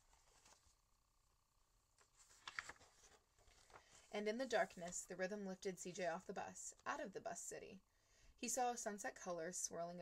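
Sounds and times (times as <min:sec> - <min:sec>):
book pages rustling: 0:00.0 - 0:00.8, 0:02.0 - 0:05.1.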